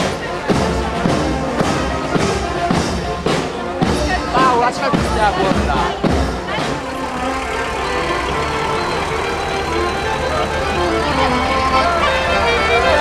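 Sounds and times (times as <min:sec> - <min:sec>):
live folk music: 0:00.0 - 0:13.0
truck engine humming: 0:00.0 - 0:13.0.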